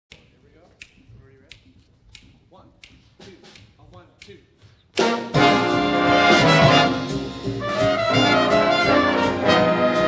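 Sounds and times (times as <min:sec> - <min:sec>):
finger snaps: 0:00.1 - 0:05.3
jazz band playing: 0:05.0 - 0:10.0.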